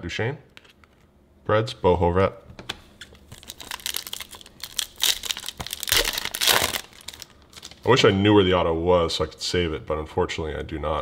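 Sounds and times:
foil wrapper crinkling: 3.2 - 8.0.

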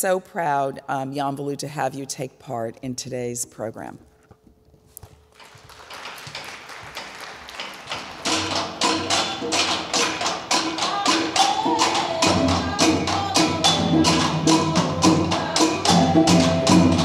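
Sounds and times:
drum ensemble playing a beat: 5.6 - 17.0.

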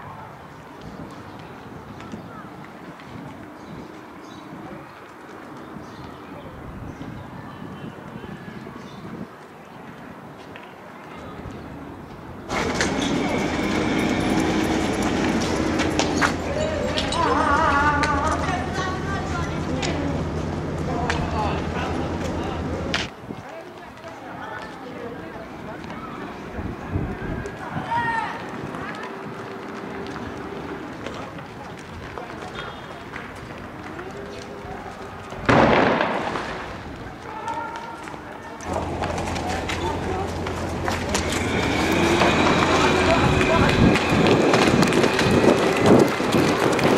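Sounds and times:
vehicle engine whining: 12.5 - 23.1, 38.7 - 46.9
people shouting in the street: 12.9 - 20.2, 24.0 - 33.1, 37.0 - 46.9
loud blast: 35.5 - 36.8.

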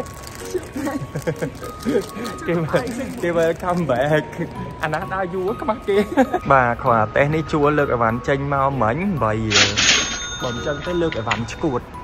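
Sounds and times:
people talking: 1.9 - 9.8.

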